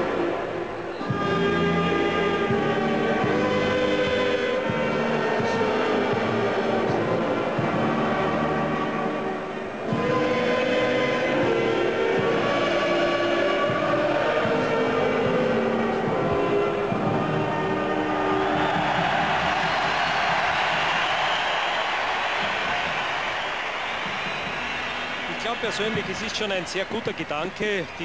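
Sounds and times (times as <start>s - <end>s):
anthem with held chords: 0.0s - 20.9s
crowd cheering and applauding: 0.0s - 28.0s.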